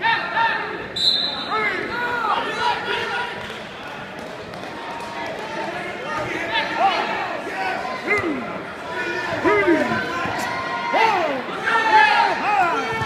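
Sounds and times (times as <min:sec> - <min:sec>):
voices of coaches and spectators: 0:00.0 - 0:13.0.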